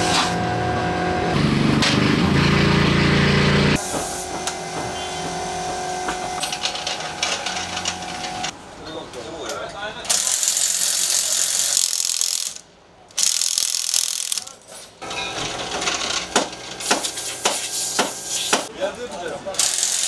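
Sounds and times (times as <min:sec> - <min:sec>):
pneumatic wheel guns rattling: 0:10.1 - 0:18.7, 0:19.6 - 0:20.0
metallic clanks of tools: 0:14.4 - 0:17.1.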